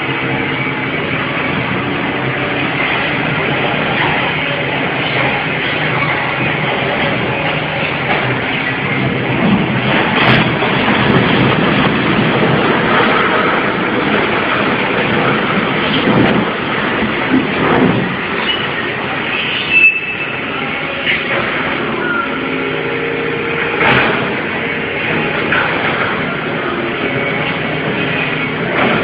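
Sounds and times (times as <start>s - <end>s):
concrete building collapsing: 0.0s - 29.0s.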